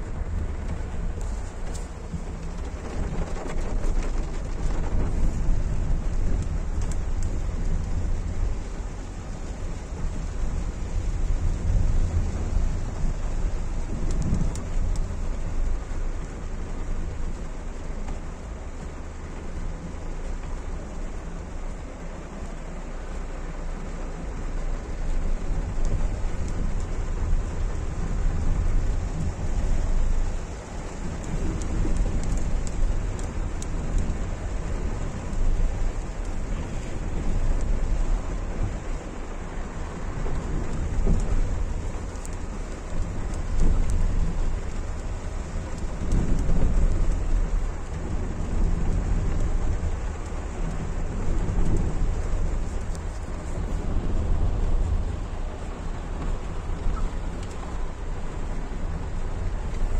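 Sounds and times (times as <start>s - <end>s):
car driving on rough track: 0.0s - 59.9s
rain drumming on car roof: 0.0s - 59.9s.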